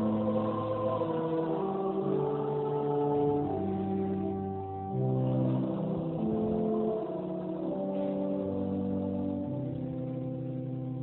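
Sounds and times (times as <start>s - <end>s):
organ playing slow chords: 0.0s - 11.0s.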